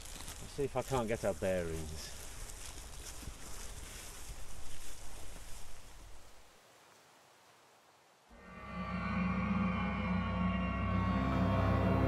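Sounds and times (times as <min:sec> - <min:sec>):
rustling: 0:00.0 - 0:06.4
wind: 0:00.0 - 0:08.6
eerie music chord with drone: 0:08.4 - 0:12.0.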